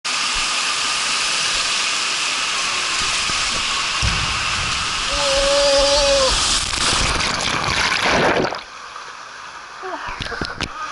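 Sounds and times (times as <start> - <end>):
water rushing down a slide: 0.1 - 10.9.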